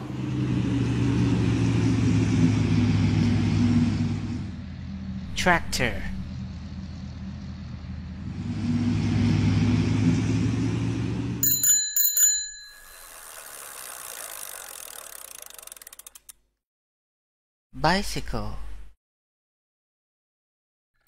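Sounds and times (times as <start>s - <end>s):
tractor engine droning: 0.0s - 11.6s
bicycle bell ringing: 11.4s - 15.6s.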